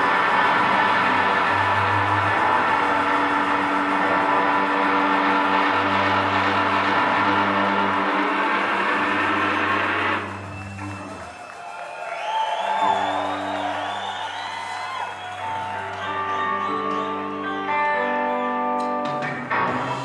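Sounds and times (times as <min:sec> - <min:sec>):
electric guitar chords: 0:00.0 - 0:11.2, 0:15.4 - 0:20.0
drums: 0:00.0 - 0:17.8, 0:18.8 - 0:20.0.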